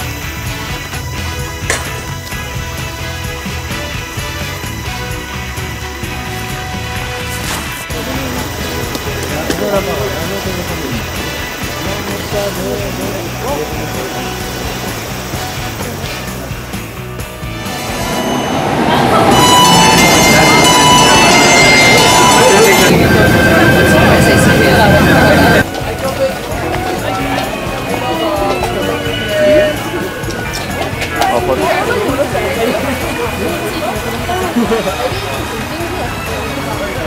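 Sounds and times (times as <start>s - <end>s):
crowd voices: 0.0s - 37.0s
subway train running: 0.0s - 37.0s.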